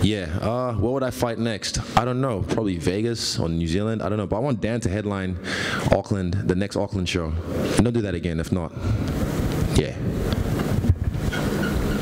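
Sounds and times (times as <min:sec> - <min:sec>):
breath on microphone: 0:05.4 - 0:05.9, 0:08.7 - 0:09.2
microphone handling noise: 0:08.9 - 0:12.0.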